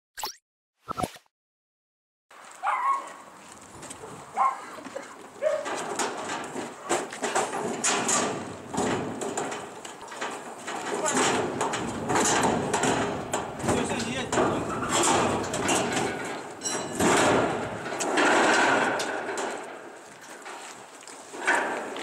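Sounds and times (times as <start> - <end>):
dog barking: 2.6 - 3.2, 4.0 - 4.8, 5.4 - 5.7
sheet-metal fence clattering: 4.4 - 22.0.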